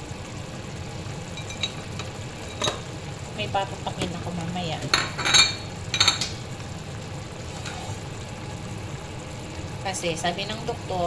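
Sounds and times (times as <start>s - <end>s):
bubbling sizzle in a frying pan: 0.0s - 11.0s.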